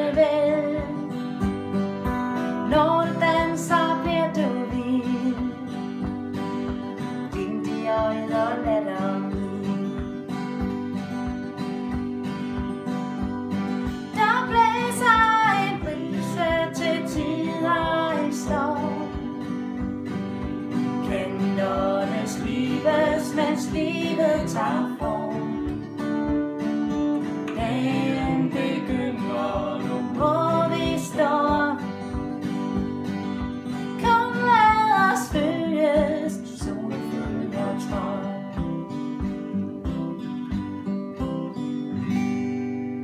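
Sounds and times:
acoustic guitars strummed: 0:00.0 - 0:43.0
person singing: 0:02.7 - 0:06.0, 0:07.2 - 0:10.0, 0:14.0 - 0:19.4, 0:20.6 - 0:26.0, 0:27.5 - 0:32.1, 0:33.8 - 0:40.5.

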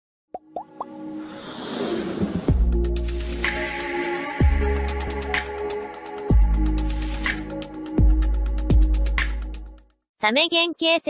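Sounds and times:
whoosh: 0:01.2 - 0:02.9.

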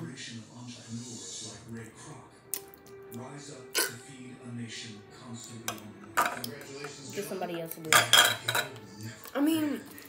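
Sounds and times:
fork clinking on plastic bowl: 0:07.9 - 0:08.8.

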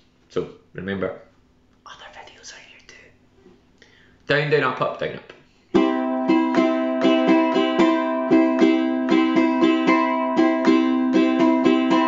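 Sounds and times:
man whispering: 0:01.9 - 0:03.2.

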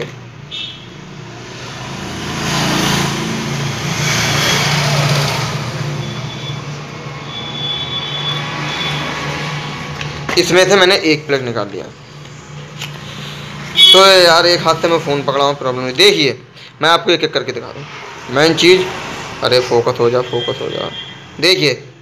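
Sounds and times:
traffic hum: 0:00.0 - 0:22.0
vehicle passing on road: 0:00.9 - 0:21.4.

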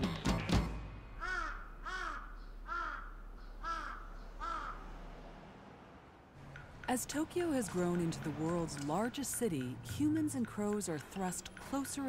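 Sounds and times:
crow cawing: 0:01.2 - 0:05.0.

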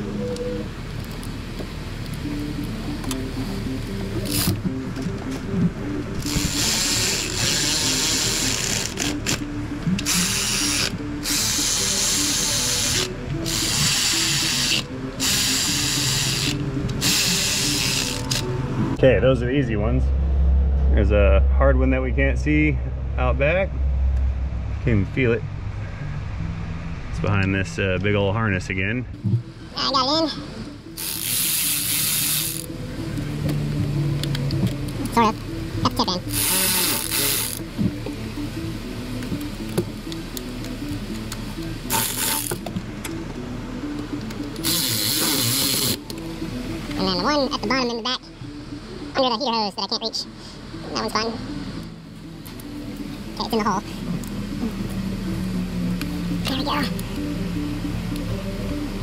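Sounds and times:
background music: 0:00.0 - 0:59.0
cordless ratchet running: 0:04.2 - 0:04.6, 0:06.2 - 0:09.4, 0:10.0 - 0:18.5, 0:31.0 - 0:32.7, 0:36.3 - 0:37.6, 0:41.9 - 0:42.6, 0:44.6 - 0:46.0.

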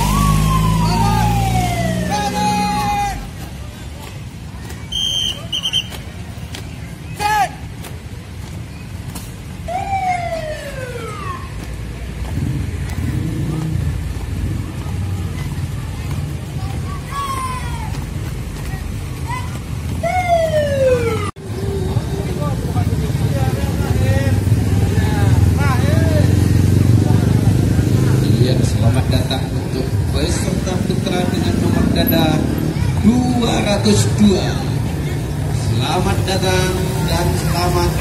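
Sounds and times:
falling-pitch wails: 0:00.0 - 0:03.0
motor vehicles: 0:00.0 - 0:38.0
voices: 0:00.0 - 0:38.0.

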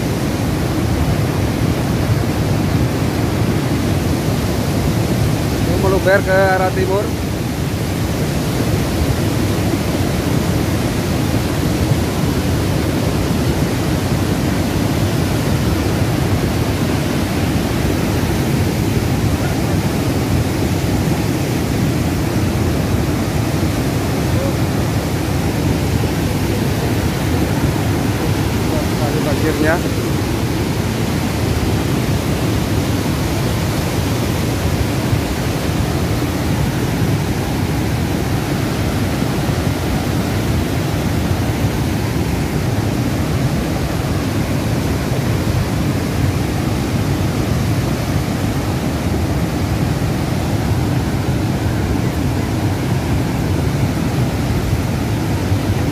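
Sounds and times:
mud and debris flow rushing: 0:00.0 - 0:55.9.

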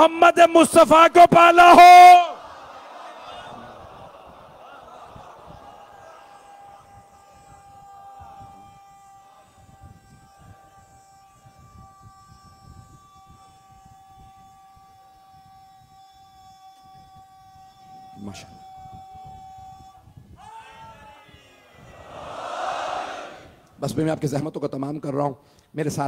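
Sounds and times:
seated crowd rumble and rustle: 0:02.3 - 0:15.8, 0:20.2 - 0:24.0.

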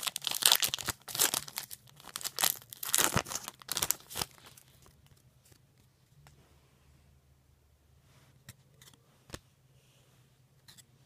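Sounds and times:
wrapper tearing and crinkling: 0:00.0 - 0:04.7.

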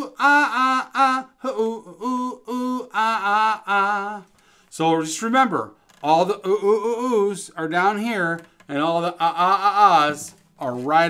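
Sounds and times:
man chanting gorilla-style syllables: 0:00.0 - 0:04.2.

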